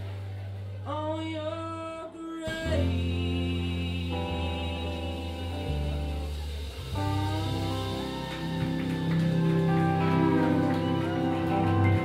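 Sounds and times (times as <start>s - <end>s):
person singing: 0.8s - 12.0s
live rock band playing: 2.5s - 12.0s.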